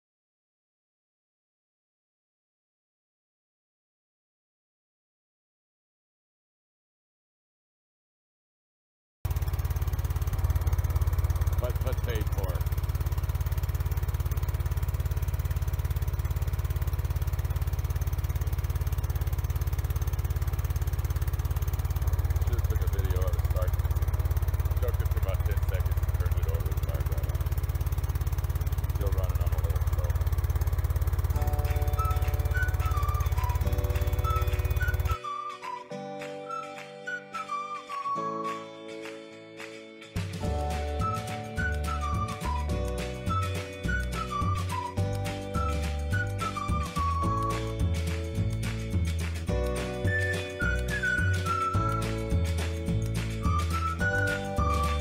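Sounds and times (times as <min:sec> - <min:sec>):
low pulsing rumble: 0:09.3 - 0:35.2
music: 0:11.5 - 0:12.7, 0:21.8 - 0:27.5, 0:28.9 - 0:30.2, 0:31.3 - 0:55.0.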